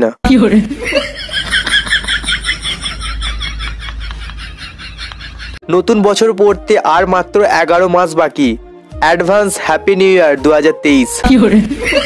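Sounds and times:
sped-up laughing sound effect: 0:00.3 - 0:05.6, 0:11.2 - 0:12.0.

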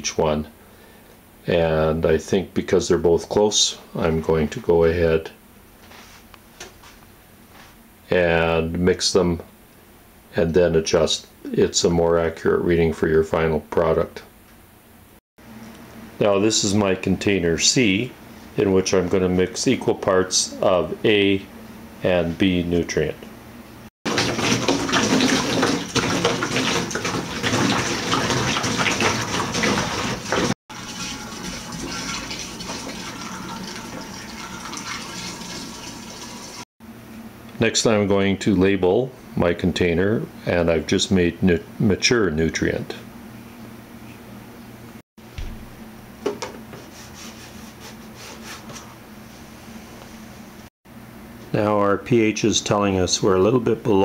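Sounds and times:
liquid pouring through funnel: 0:24.1 - 0:36.6.

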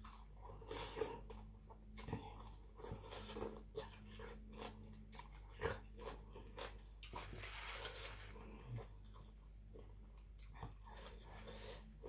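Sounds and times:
person chewing food: 0:00.0 - 0:12.0.

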